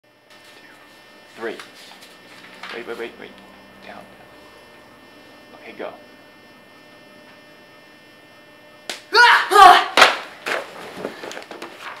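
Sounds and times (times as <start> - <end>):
sharp smack: 10.0 - 10.3.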